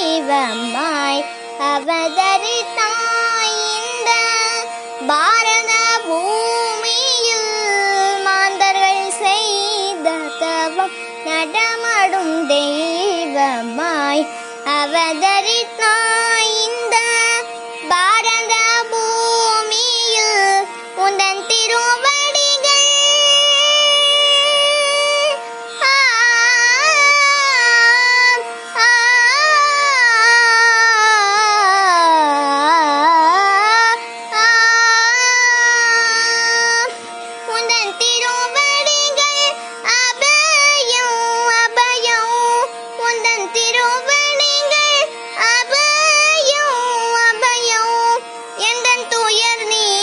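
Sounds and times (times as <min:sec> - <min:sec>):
boy singing devotional song: 0:00.0 - 0:50.0
steady drone: 0:00.0 - 0:50.0.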